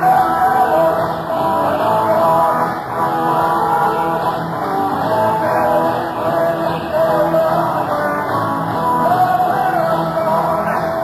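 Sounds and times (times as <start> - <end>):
blues rock band playing live: 0.0 - 11.0.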